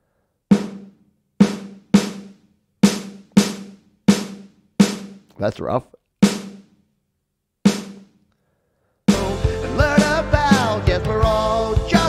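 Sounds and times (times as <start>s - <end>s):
distorted snare drum hit: 0.5s - 5.3s, 6.2s - 6.7s, 7.7s - 8.0s.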